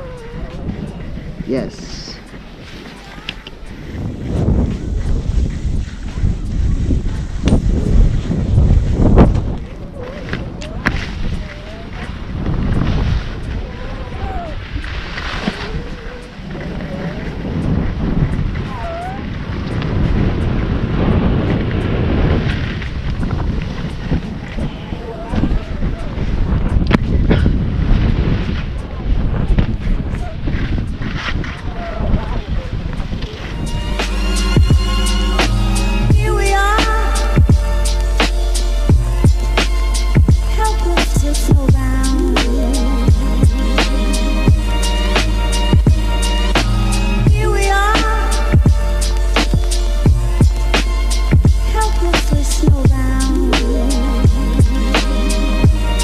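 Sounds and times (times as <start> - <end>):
wind buffeting microphone: 0.0 - 56.0
skis scraping packed snow: 0.7 - 52.8
music with a beat: 33.6 - 56.0.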